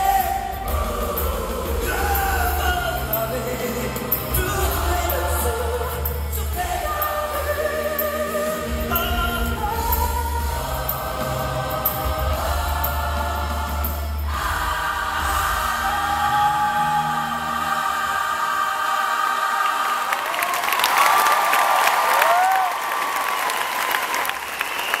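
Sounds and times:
choir and band holding chord: 0.0 - 20.9
audience applause and cheering: 19.0 - 25.0.

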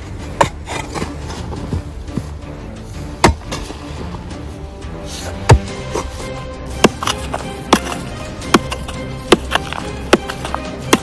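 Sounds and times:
dirt and rocks rattling: 0.0 - 4.3, 5.3 - 11.0
mattock striking stony ground: 0.0 - 11.0.

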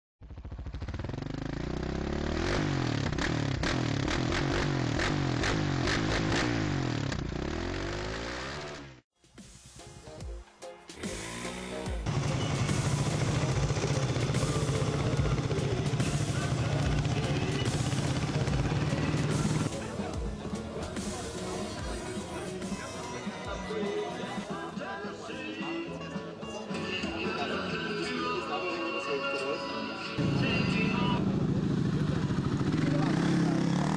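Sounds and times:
quad engines revving: 0.7 - 9.0, 11.0 - 20.0, 30.2 - 33.9
music: 9.1 - 31.3.

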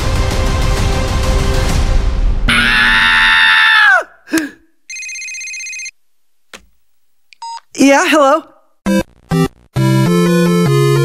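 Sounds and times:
telephone ringing: 4.9 - 6.0.

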